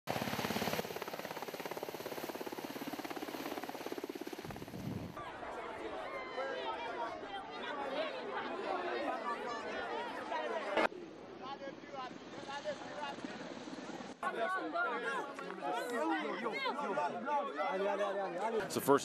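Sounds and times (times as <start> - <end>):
helicopter rotor blades beating: 0.1 - 5.2
crowd of people talking: 5.2 - 19.0.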